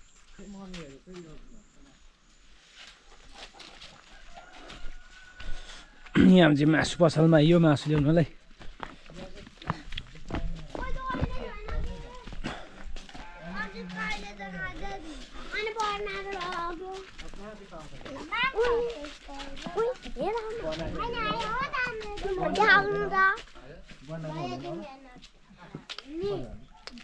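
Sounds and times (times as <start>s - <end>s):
adults talking: 3.2s - 27.0s
children chattering and calling out: 10.5s - 27.0s.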